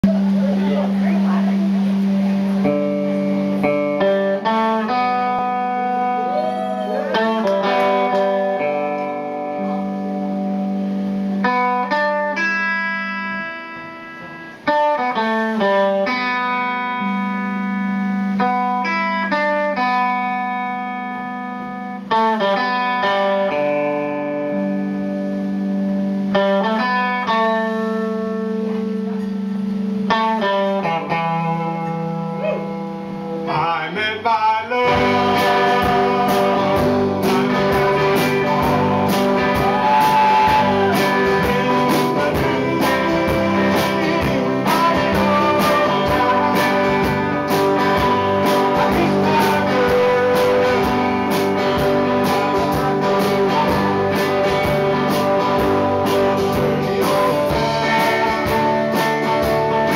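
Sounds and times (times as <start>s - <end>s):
drums: 0.0s - 59.9s
electric guitars strumming chords: 0.0s - 59.9s.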